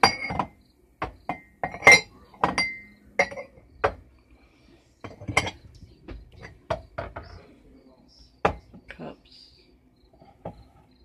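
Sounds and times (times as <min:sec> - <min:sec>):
coffee mugs clinking: 0:00.0 - 0:04.2, 0:05.0 - 0:07.5, 0:08.4 - 0:09.0, 0:10.2 - 0:11.0.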